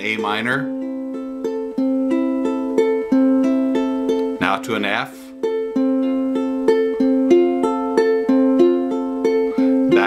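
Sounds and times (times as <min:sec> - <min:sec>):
ukulele fingerpicked arpeggio: 0:00.0 - 0:10.0.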